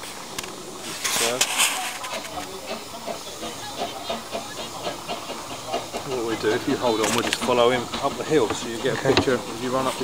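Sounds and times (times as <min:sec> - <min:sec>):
steam locomotive hissing: 0:00.0 - 0:10.0
faint regular beat: 0:02.1 - 0:09.8.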